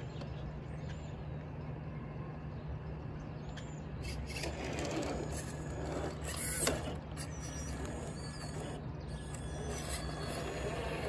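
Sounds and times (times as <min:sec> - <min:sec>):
birds chirping: 0:00.0 - 0:11.0
toy car motor whirring: 0:04.0 - 0:11.0.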